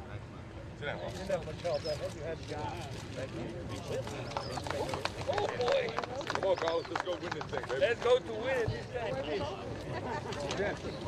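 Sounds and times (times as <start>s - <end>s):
people talking: 0.8s - 11.0s.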